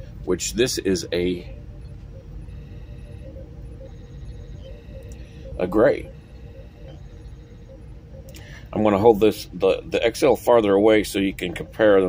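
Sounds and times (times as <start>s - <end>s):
faint steady tones: 0.0s - 12.0s
low background hum: 0.0s - 12.0s.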